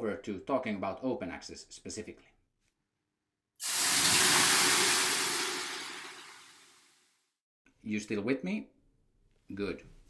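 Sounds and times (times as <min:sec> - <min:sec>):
water hissing on hot stones: 0:03.6 - 0:06.7.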